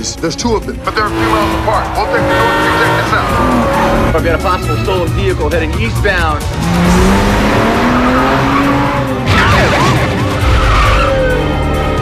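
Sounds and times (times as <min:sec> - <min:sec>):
film score music: 0:00.0 - 0:12.0
car engine revving: 0:00.6 - 0:11.8
tyres squealing and skidding: 0:00.8 - 0:05.0, 0:06.6 - 0:12.0.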